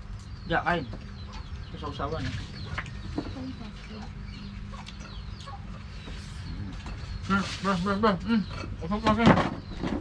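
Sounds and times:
chicken clucking: 1.0s - 10.0s.

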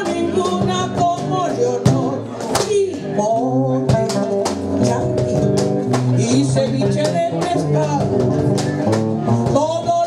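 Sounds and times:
woman singing: 0.0s - 5.6s, 6.2s - 8.1s, 9.4s - 10.0s
acoustic guitars playing: 0.0s - 10.0s
cajon beating a rhythm: 0.0s - 10.0s.

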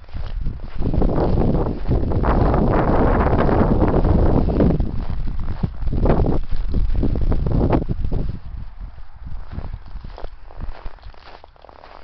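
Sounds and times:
footsteps crunching through snow: 0.0s - 12.0s
wind rumbling on microphone: 0.0s - 12.0s.

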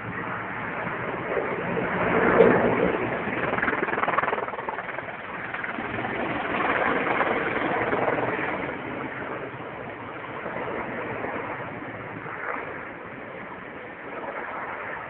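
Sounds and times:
distant helicopter drone: 0.0s - 15.0s.

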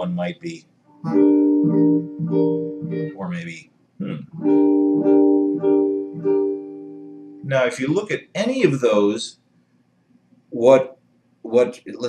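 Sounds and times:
person humming: 0.0s - 0.6s, 3.2s - 4.3s, 7.5s - 9.3s, 10.6s - 10.8s
jazz guitar chord strikes: 4.4s - 6.7s.

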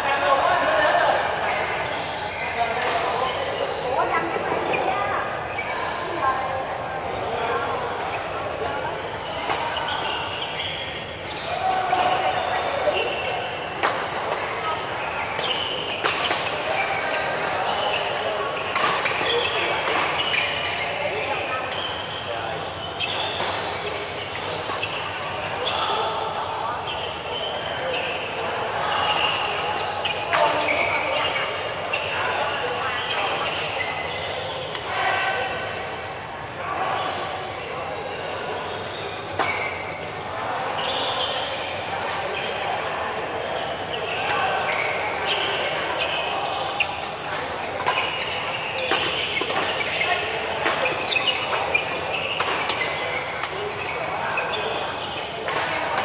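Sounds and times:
people chattering: 0.0s - 56.0s.

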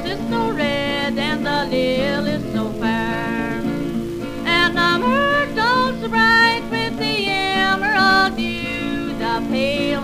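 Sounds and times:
acoustic guitar picking: 0.0s - 10.0s
autoharp: 0.0s - 10.0s
woman singing: 0.0s - 10.0s.

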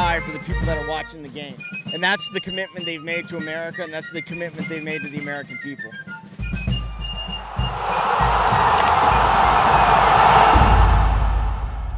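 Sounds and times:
rushing whoosh: 7.1s - 11.9s
deep low rumble: 7.4s - 11.9s.

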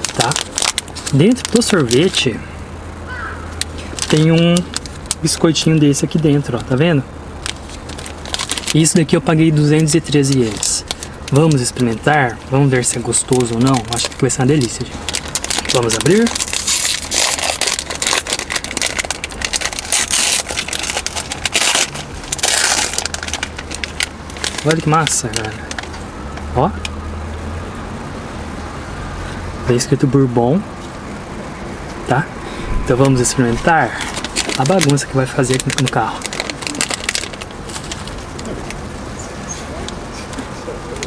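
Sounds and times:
biting and chewing biscuit: 0.0s - 2.1s, 12.9s - 26.0s
plastic wrapper crinkling: 0.0s - 2.2s, 3.6s - 5.4s, 7.4s - 26.0s, 32.7s - 38.8s.

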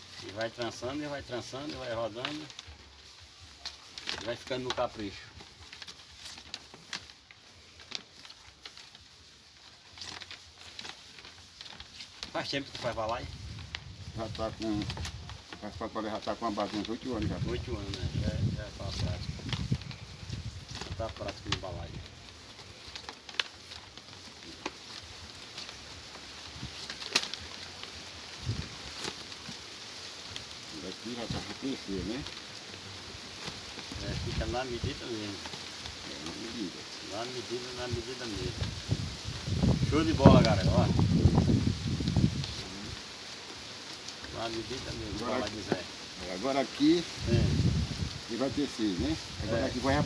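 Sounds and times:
vine strands rustling and scraping: 0.0s - 50.0s.

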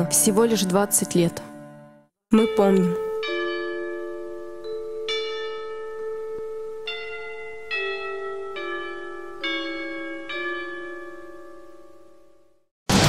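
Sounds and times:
slow bell tune: 0.0s - 12.7s.

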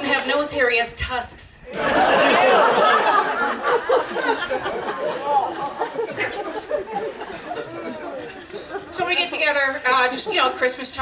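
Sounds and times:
woman speaking: 0.0s - 1.6s, 8.9s - 11.0s
audience chatter: 1.6s - 11.0s.

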